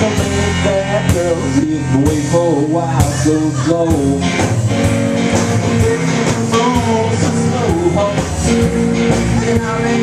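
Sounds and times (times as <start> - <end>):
electric guitar sliding notes: 0.0 - 10.0
plucked upright bass: 0.0 - 10.0.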